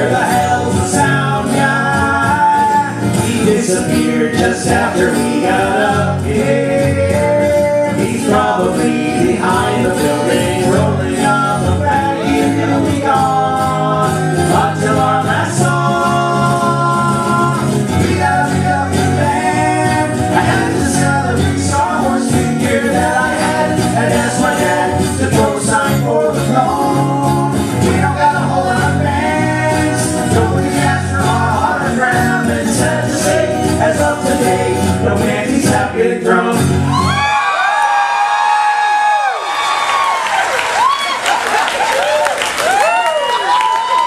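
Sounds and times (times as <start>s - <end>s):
acoustic guitar strummed: 0.0s - 37.3s
men singing: 0.0s - 37.4s.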